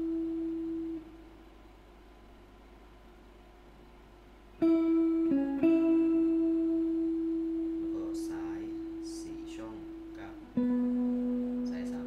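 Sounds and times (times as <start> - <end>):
faint amplifier hum and hiss: 0.0 - 12.0
clean electric guitar note: 4.6 - 12.0.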